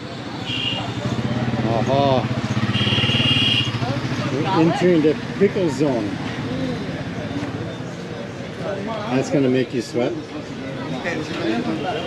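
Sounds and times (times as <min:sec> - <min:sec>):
busy street voices: 0:00.0 - 0:12.0
motorcycle engine running: 0:00.9 - 0:05.5.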